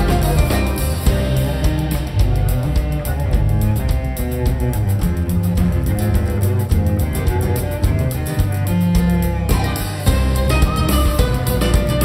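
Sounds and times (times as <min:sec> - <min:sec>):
bowed strings and double bass: 0:00.0 - 0:12.0
plucked strings: 0:00.0 - 0:12.0
steady percussion beat: 0:00.0 - 0:12.0.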